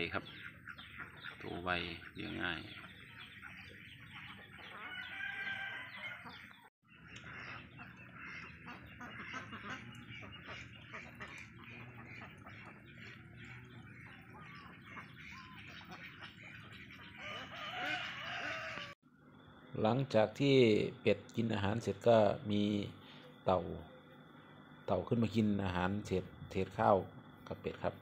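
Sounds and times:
chickens and ducks clucking: 0:00.0 - 0:19.0.

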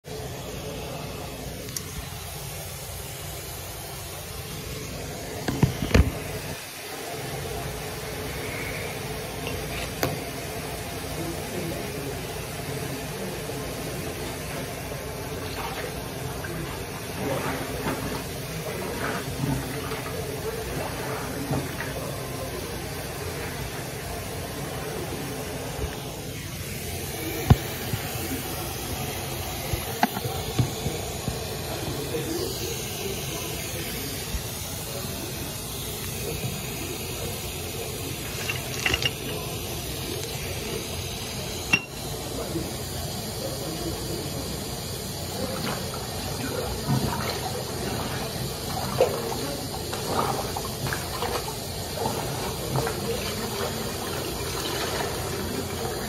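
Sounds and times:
faucet running into sink: 0:13.8 - 0:42.7, 0:43.7 - 0:56.0.

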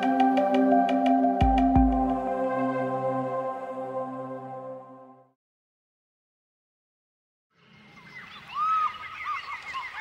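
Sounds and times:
bird-like chirps: 0:07.6 - 0:10.0.

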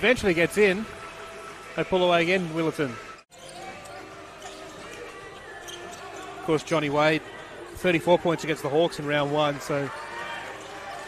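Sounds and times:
faint indoor arena background: 0:00.0 - 0:11.0.

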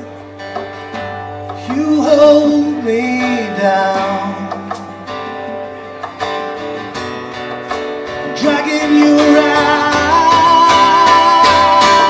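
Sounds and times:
acoustic guitar strumming: 0:00.0 - 0:12.0
cajon: 0:00.0 - 0:12.0.

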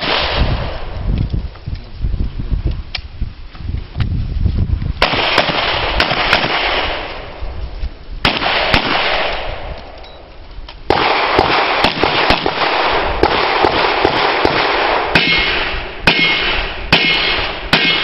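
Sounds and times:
handgun shots: 0:10.9 - 0:18.0.

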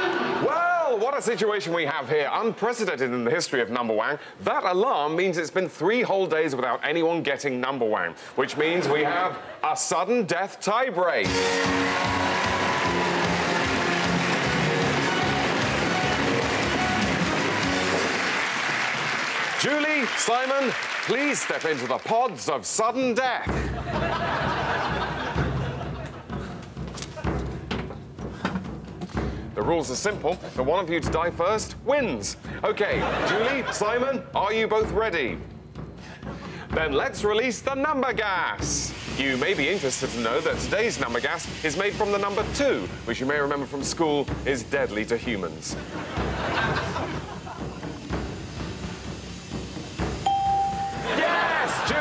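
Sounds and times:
stage smoke hissing: 0:11.2 - 0:22.8, 0:23.4 - 0:30.6, 0:38.3 - 0:52.0
sharp knocks and thumps: 0:26.3 - 0:29.4
steady electronic tone: 0:50.2 - 0:51.1.

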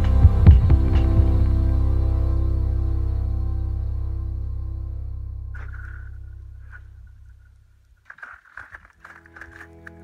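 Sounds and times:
soft background music: 0:00.0 - 0:07.5
dog walking on crunching ice: 0:05.6 - 0:10.0.

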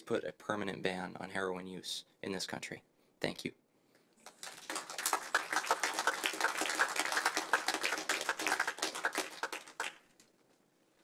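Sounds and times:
audience applauding: 0:04.2 - 0:10.2.

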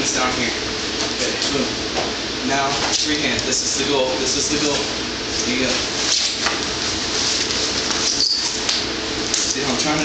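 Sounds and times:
brief high squeak: 0:08.0 - 0:08.6.

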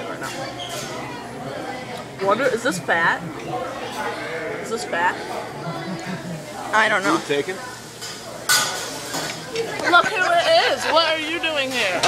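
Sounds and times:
dishes and cutlery clattering: 0:08.0 - 0:09.8.

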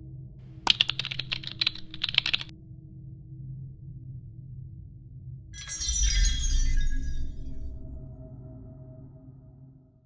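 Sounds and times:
glassy shatter and chime effect: 0:05.6 - 0:07.5.

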